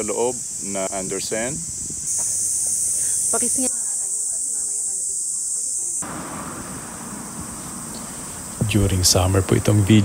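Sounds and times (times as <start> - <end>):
cicadas buzzing: 0.0 - 10.0.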